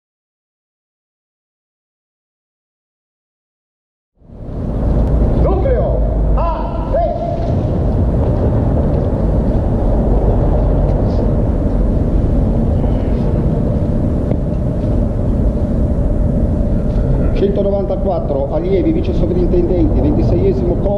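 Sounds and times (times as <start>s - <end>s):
low outdoor rumble: 4.2s - 20.9s.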